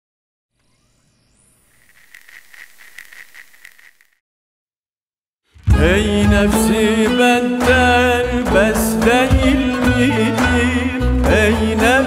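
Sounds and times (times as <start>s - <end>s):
pulsing high chirping tone: 0.6s - 4.2s.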